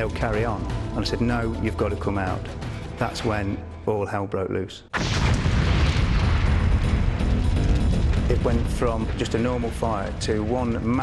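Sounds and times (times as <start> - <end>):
music: 0.0 - 11.0
fireball explosion rumble: 5.0 - 11.0.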